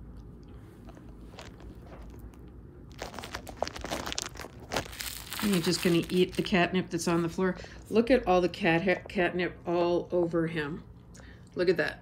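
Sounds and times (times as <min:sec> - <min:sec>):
cat crunching cardboard scratcher: 0:00.9 - 0:06.5.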